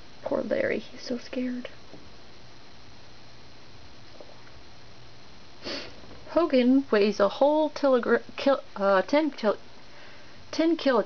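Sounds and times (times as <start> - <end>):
steady low hiss: 0.0 - 11.0
person sniffing: 5.6 - 6.0.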